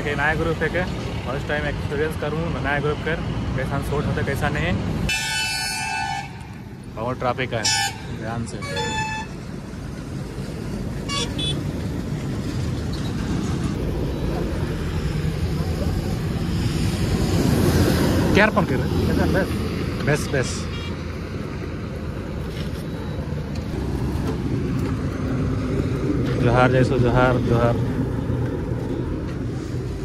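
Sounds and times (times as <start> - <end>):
heavy trucks passing: 0.0 - 30.0
motorcycle engine and road rumble: 0.0 - 30.0
vehicle horn toot: 5.1 - 6.4, 7.6 - 9.4, 11.1 - 11.6.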